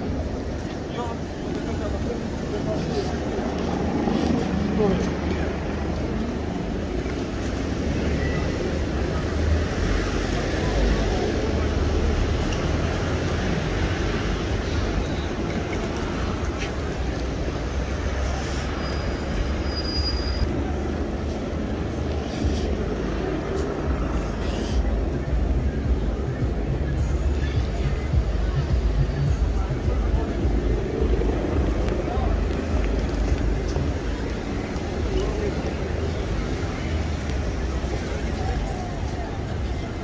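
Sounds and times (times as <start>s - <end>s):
murmur of pedestrians: 0.0s - 40.0s
traffic and buses rumbling: 0.0s - 40.0s.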